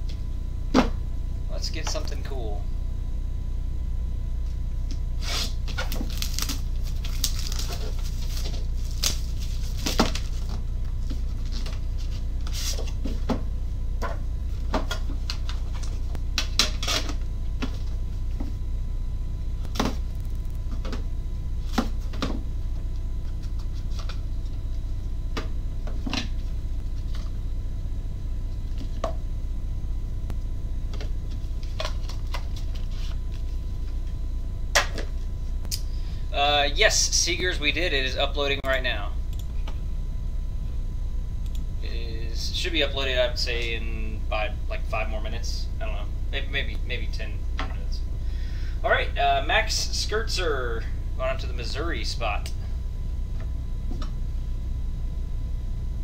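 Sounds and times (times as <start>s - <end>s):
low hum: 0.0s - 56.0s
cards handled with clicks and rustles: 5.2s - 13.4s, 23.3s - 24.2s, 30.9s - 33.5s.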